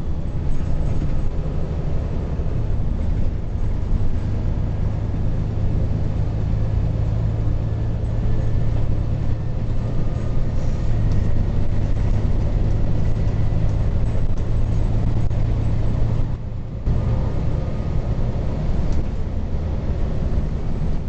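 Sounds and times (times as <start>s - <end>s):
bus engine drone: 0.0s - 21.0s
road noise: 0.0s - 21.0s.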